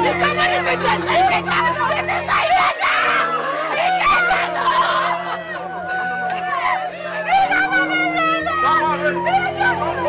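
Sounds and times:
mourners wailing and crying: 0.0 - 10.0.

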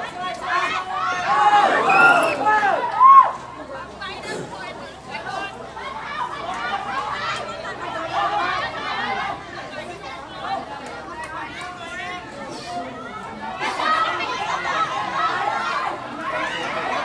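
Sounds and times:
loud high shout: 0.0 - 3.6, 5.1 - 9.7, 13.4 - 17.0
crowd of voices chattering: 0.0 - 17.0.

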